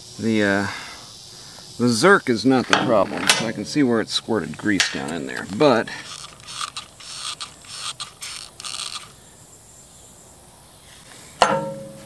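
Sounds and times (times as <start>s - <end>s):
hand tools clicking on metal: 2.6s - 9.2s
sharp metallic clink: 11.4s - 12.0s.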